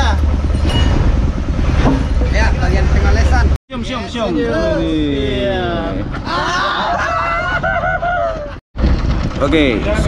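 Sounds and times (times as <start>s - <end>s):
low engine rumble: 0.0s - 6.2s, 7.0s - 10.0s
man laughing: 5.7s - 8.6s.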